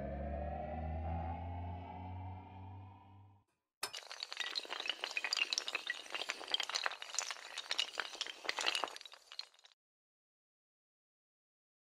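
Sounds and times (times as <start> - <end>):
small hard blocks toppling and clattering: 3.8 - 9.8.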